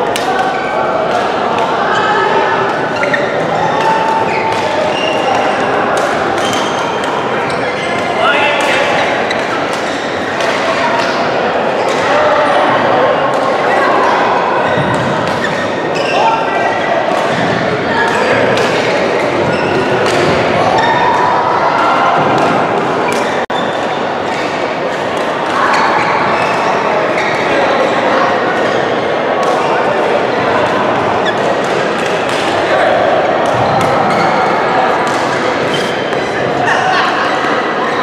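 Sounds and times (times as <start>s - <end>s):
chatter of voices: 0.0s - 38.0s.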